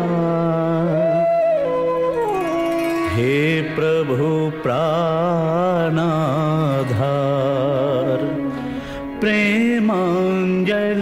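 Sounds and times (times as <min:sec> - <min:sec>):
man singing devotional chant: 0:03.1 - 0:08.5, 0:09.2 - 0:11.0.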